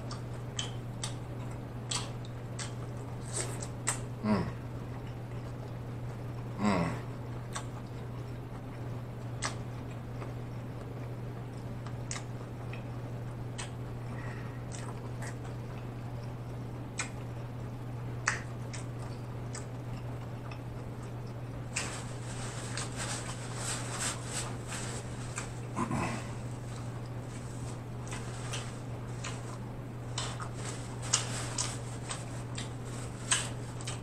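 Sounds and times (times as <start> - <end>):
mouth chewing: 0.0 - 4.1, 7.4 - 17.4, 18.2 - 34.0
steady low hum: 0.0 - 34.0.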